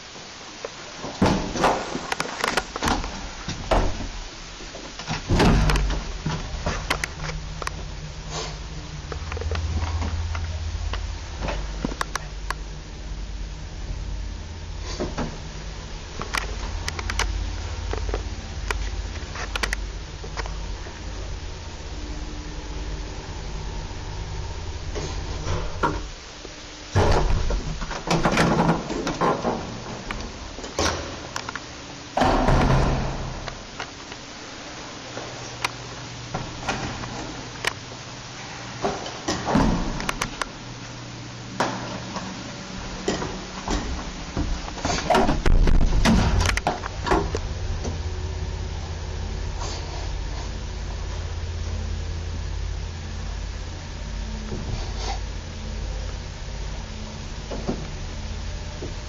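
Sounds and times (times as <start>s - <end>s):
lift car humming: 0.0s - 59.0s
lift doors clunking and banging: 1.0s - 7.2s, 26.9s - 31.4s, 32.1s - 33.8s, 43.0s - 48.0s.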